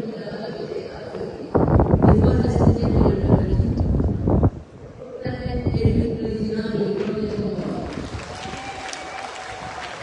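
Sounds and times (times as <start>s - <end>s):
stadium crowd noise: 6.6s - 10.0s.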